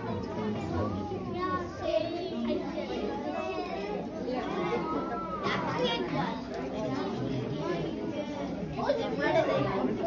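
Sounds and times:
chatter of many voices: 0.0s - 10.0s
children's voices: 0.0s - 10.0s.

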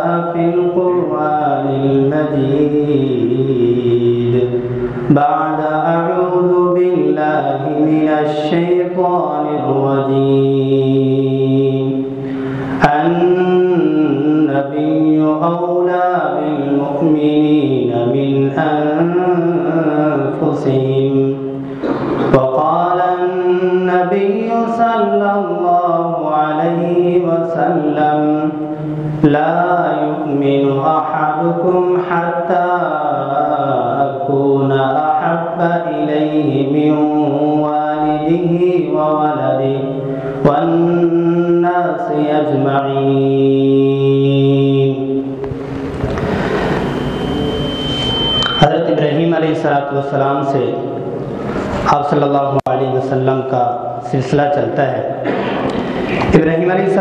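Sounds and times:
man chanting melodically: 0.0s - 45.7s, 46.6s - 55.2s, 55.8s - 57.0s.

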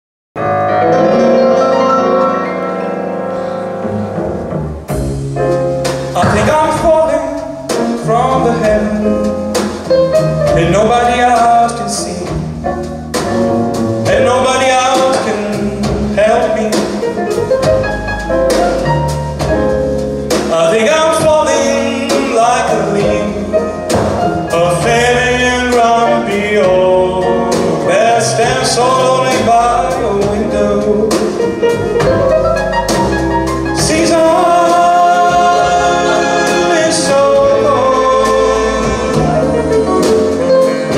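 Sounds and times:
steady bass: 3.8s - 40.9s
man singing into microphone: 6.2s - 9.4s, 10.6s - 12.4s, 14.1s - 17.1s, 20.5s - 23.6s, 24.5s - 31.4s, 33.8s - 40.9s
accordion and strings ensemble: 35.2s - 40.9s.

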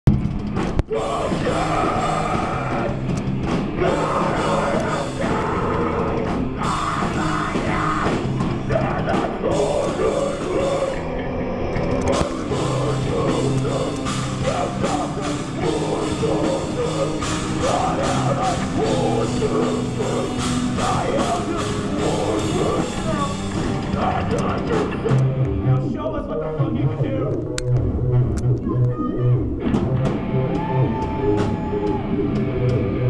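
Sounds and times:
drum kit: 0.0s - 11.0s, 11.8s - 25.6s, 29.5s - 33.0s
electric bass: 0.0s - 33.0s
electric guitar: 0.1s - 25.9s, 27.2s - 33.0s
keyboards: 0.1s - 33.0s
man singing: 0.9s - 3.0s, 3.7s - 11.1s, 12.1s - 27.4s.

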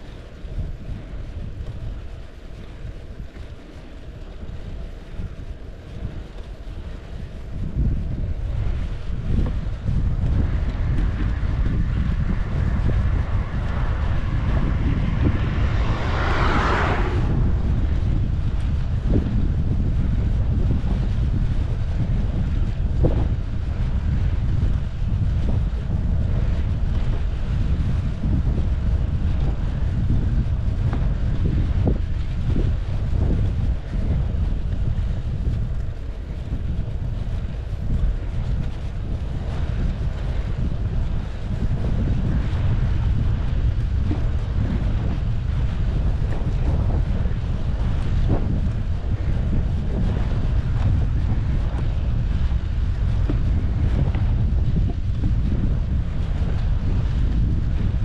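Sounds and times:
rush of noise: 0.0s - 58.0s
wind buffeting microphone: 0.0s - 58.0s.

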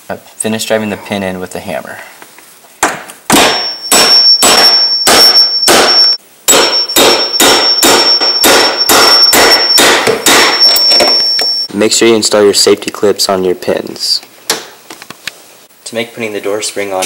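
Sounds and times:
hammer striking metal pin: 2.8s - 11.7s.

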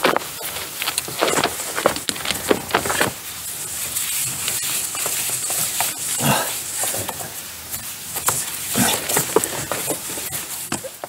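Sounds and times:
rope creaking on wooden post: 0.0s - 7.4s.

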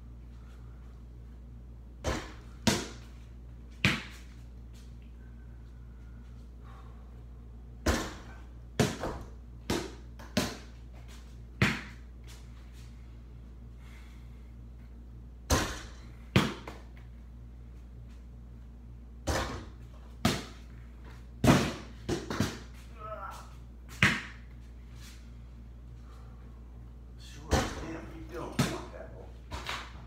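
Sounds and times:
steady low hum: 0.0s - 30.0s
ball bouncing on hard surfaces: 2.0s - 3.1s, 3.8s - 4.3s, 7.8s - 10.8s, 11.6s - 12.0s, 15.5s - 16.9s, 19.2s - 20.6s, 21.4s - 22.8s, 23.9s - 24.4s, 27.5s - 27.9s.

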